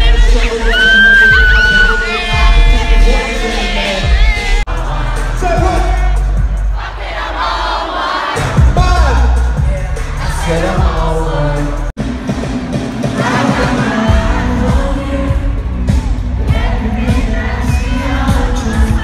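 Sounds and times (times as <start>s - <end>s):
crowd singing and shouting: 0.0s - 19.0s
loud live concert music: 0.0s - 19.0s.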